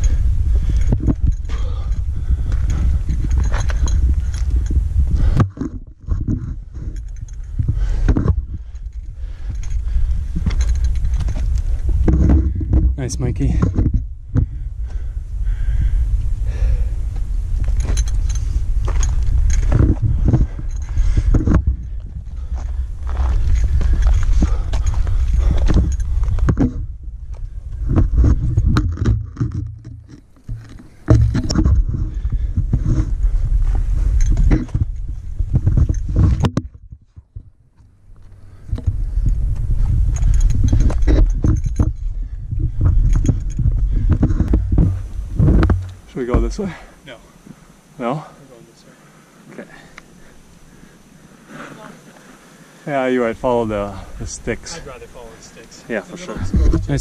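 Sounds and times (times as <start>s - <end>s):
gear clicking and rattling: 0.0s - 15.1s, 17.1s - 47.0s, 53.3s - 57.0s
wind rumbling on microphone: 0.0s - 47.0s, 53.2s - 57.0s.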